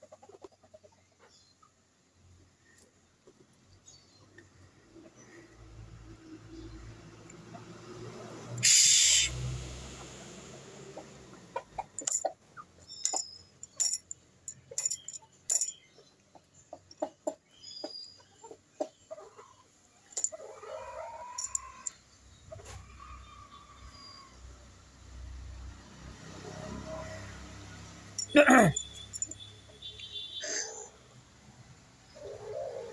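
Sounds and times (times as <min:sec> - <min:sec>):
chickens clucking: 0:00.0 - 0:02.1, 0:09.9 - 0:13.2, 0:15.9 - 0:23.9
chickens pecking among husks: 0:00.0 - 0:05.6.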